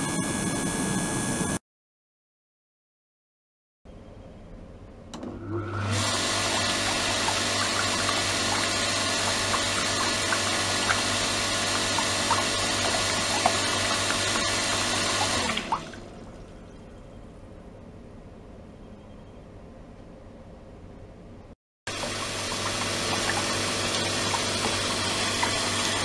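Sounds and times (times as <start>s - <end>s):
electric pump motor hum: 0.0s - 1.6s, 5.2s - 16.7s, 21.9s - 26.0s
water pouring into plastic tub: 5.9s - 16.4s, 21.9s - 26.0s.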